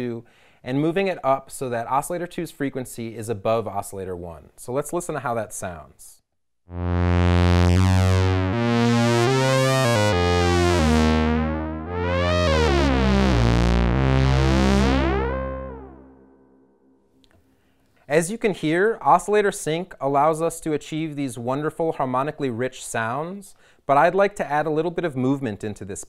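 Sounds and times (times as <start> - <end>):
synthesizer sweeping low notes: 6.7 - 16.7.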